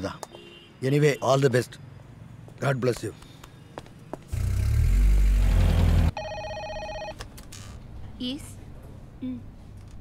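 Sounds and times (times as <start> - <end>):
car engine pulling away: 4.3 - 6.2
telephone ringing electronic trill: 6.2 - 7.1.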